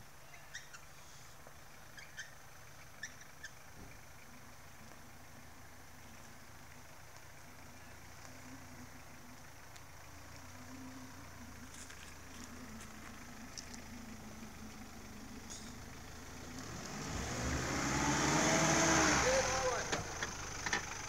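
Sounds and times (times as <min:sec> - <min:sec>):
off-road vehicle engine revving: 0:07.2 - 0:21.0.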